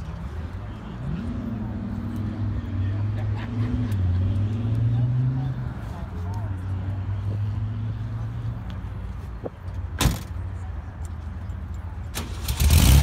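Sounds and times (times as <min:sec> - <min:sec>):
faint background voices: 0:00.0 - 0:12.3.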